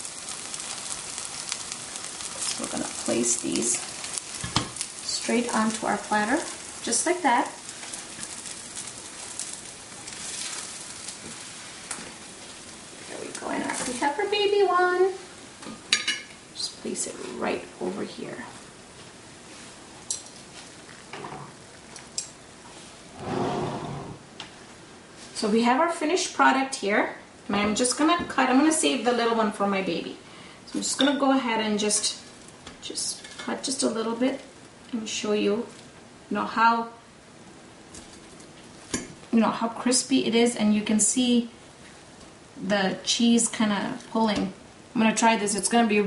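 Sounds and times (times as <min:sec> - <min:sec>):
fritters sizzling in oil: 0:00.0 - 0:23.6
soft rustle: 0:18.4 - 0:21.1.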